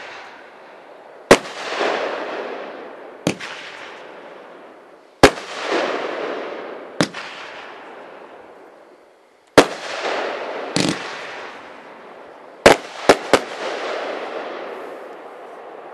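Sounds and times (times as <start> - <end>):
fireworks bursting with crackling: 0.0 - 15.9.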